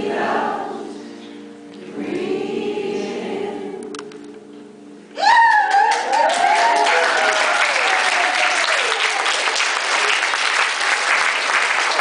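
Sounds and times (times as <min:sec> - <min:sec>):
a cappella choir singing: 0:00.0 - 0:04.4.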